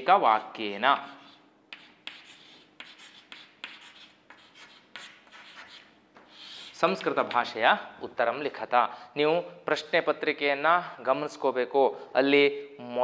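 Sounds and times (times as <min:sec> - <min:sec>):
chalk scratching on chalkboard: 0:00.0 - 0:07.1.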